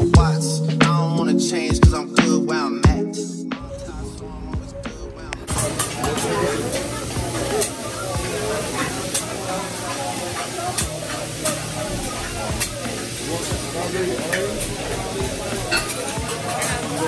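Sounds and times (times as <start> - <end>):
food sizzling on griddle: 5.5 - 17.0.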